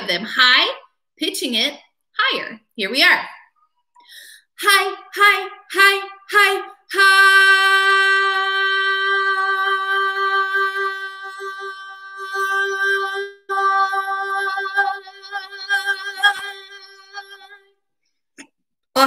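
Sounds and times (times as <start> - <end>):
woman singing long note: 4.7 - 17.7.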